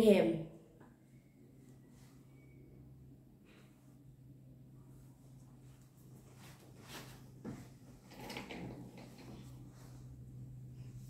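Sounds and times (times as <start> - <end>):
steady low hum: 1.0 - 11.0.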